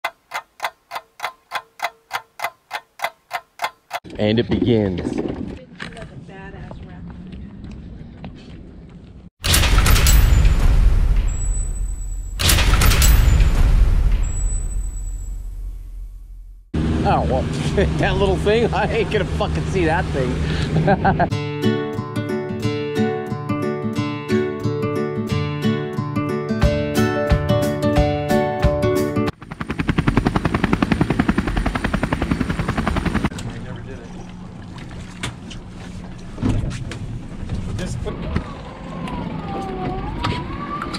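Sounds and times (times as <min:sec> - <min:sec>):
sharp clock ticking: 0:00.0 - 0:04.0
outboard motors rumbling: 0:16.8 - 0:21.3, 0:33.3 - 0:40.1
man laughing while talking: 0:17.5 - 0:21.3
strummed acoustic guitar music: 0:21.3 - 0:29.3.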